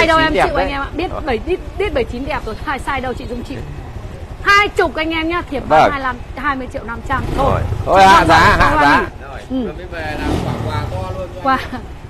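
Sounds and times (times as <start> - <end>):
indistinct talk: 0.0 - 11.8
engine rumble: 0.0 - 12.0.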